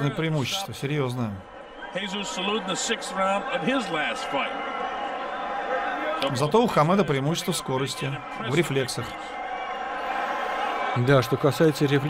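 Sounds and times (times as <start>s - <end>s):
arena crowd din: 0.0s - 12.0s.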